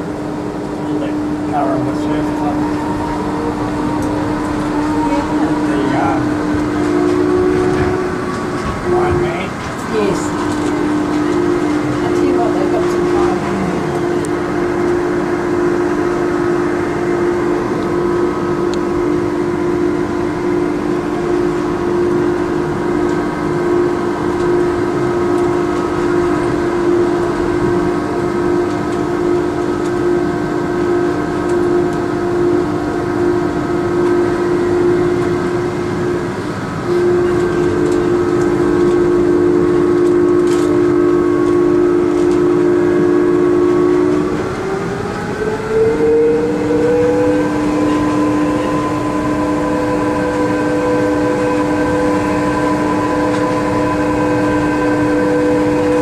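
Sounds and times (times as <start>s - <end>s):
train electric whine: 0.0s - 56.0s
train rumbling running noise: 0.0s - 56.0s.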